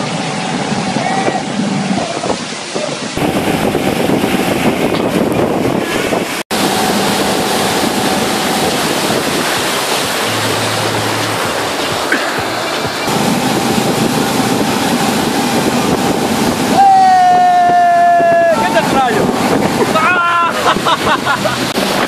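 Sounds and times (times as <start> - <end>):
churning wake water: 0.0 - 22.0
motorboat engine: 0.0 - 22.0
wind buffeting microphone: 0.0 - 22.0.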